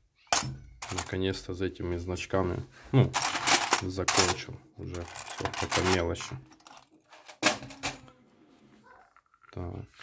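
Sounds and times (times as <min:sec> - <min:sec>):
small objects handled on wooden table: 0:03.2 - 0:08.1.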